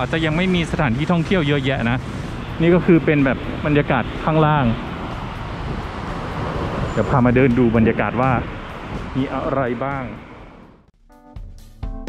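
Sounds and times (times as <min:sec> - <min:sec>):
street traffic hiss and rumble: 0:00.0 - 0:10.9.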